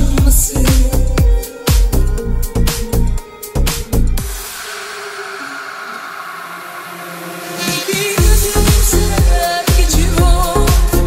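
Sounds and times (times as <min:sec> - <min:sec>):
faint sustained synth tones: 0:02.2 - 0:09.2
white-noise wash: 0:04.2 - 0:09.2.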